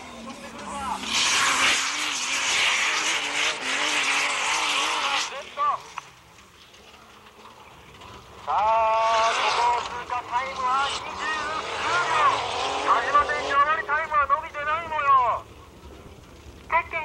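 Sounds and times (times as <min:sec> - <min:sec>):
car engine revving hard: 0:00.6 - 0:05.6, 0:08.8 - 0:13.9.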